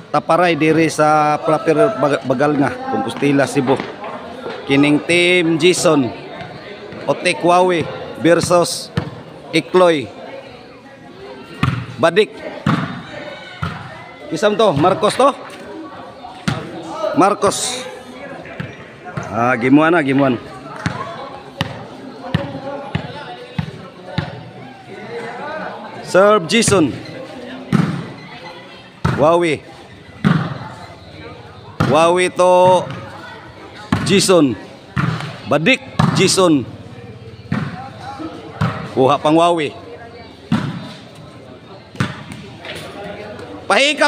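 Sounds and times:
murmur of spectators: 0:00.0 - 0:44.0
ball bouncing on concrete: 0:20.8 - 0:24.4, 0:36.0 - 0:36.4, 0:37.4 - 0:37.8, 0:38.6 - 0:38.9
ball struck with thud: 0:36.0 - 0:36.2, 0:37.5 - 0:37.8.

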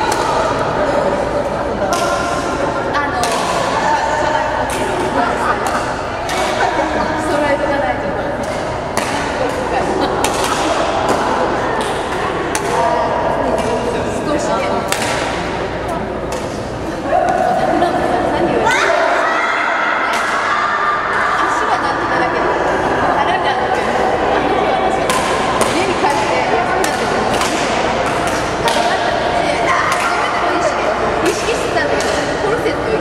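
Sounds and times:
murmur of voices: 0:00.0 - 0:33.0
rackets hitting shuttlecock: 0:00.1 - 0:00.6, 0:03.2 - 0:03.8, 0:04.6 - 0:06.9, 0:08.3 - 0:12.9, 0:14.8 - 0:17.5, 0:25.0 - 0:30.4, 0:31.3 - 0:32.4.

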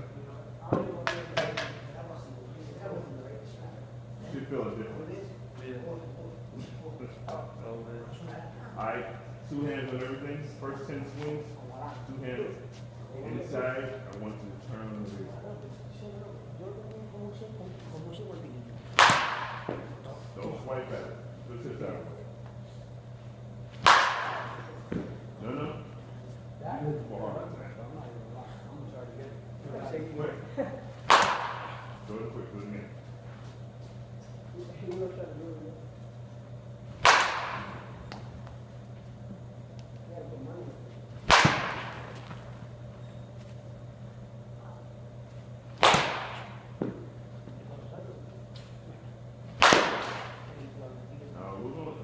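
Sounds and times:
baseball bat cracking ball: 0:18.9 - 0:19.9, 0:23.8 - 0:25.2, 0:31.0 - 0:32.1, 0:36.9 - 0:38.2, 0:41.2 - 0:42.5, 0:45.7 - 0:47.1, 0:49.5 - 0:50.5.

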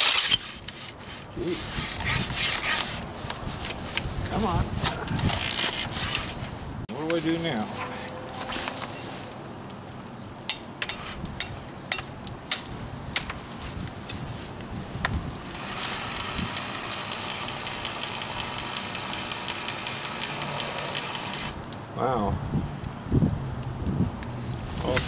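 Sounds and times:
sharp clicks and knocks: 0:08.1 - 0:16.0
hammer drill motor running: 0:15.6 - 0:21.5.

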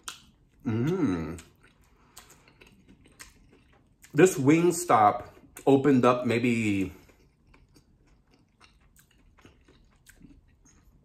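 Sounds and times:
person chewing food quietly: 0:00.0 - 0:11.0.

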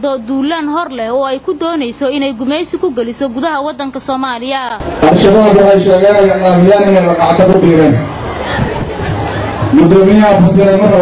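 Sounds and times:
crowd talking and calling out: 0:00.0 - 0:11.0
man speaking into microphone: 0:05.0 - 0:08.1, 0:09.7 - 0:11.0.

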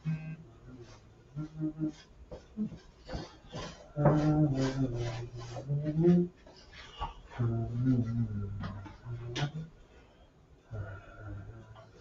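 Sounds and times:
man humming: 0:00.0 - 0:09.8, 0:10.7 - 0:12.0
paintbrush scrubbing on canvas: 0:02.4 - 0:05.9.

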